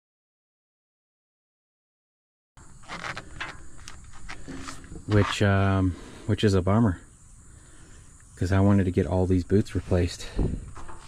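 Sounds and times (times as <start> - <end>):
faint steady background: 2.6 - 11.0.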